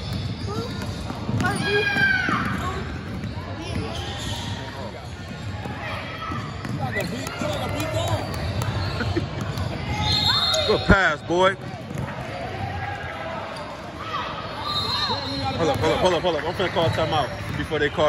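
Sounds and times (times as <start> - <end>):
basketball bouncing on gym floor: 0.0 - 4.0, 5.2 - 10.0, 11.6 - 12.8.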